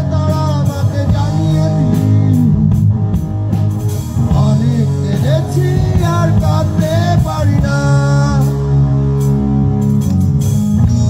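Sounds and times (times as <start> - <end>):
person singing: 0.0 - 2.8, 4.3 - 8.7
live rock band playing: 0.0 - 11.0.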